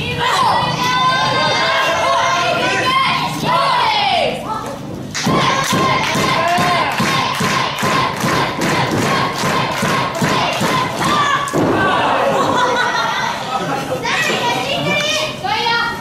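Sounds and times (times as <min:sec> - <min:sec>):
crowd voices: 0:00.0 - 0:16.0
crowd clapping in unison: 0:05.1 - 0:11.4.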